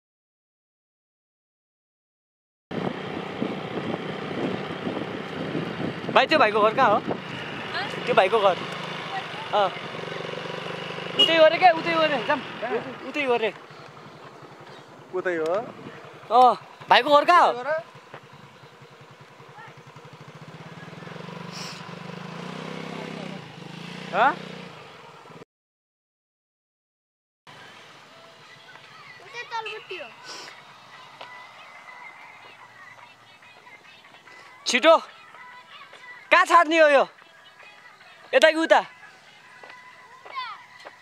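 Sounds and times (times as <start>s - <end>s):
motorcycle engine running: 2.7s - 25.4s, 27.5s - 37.2s
wind blowing on microphone: 2.8s - 8.1s.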